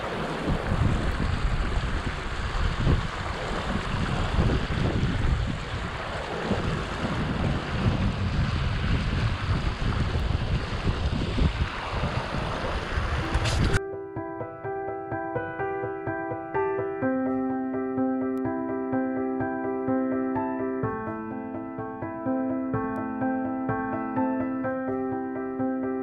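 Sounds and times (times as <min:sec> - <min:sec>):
fast-flowing stream: 0:00.0 - 0:13.8
wind buffeting microphone: 0:00.0 - 0:13.8
piano music: 0:13.1 - 0:26.0.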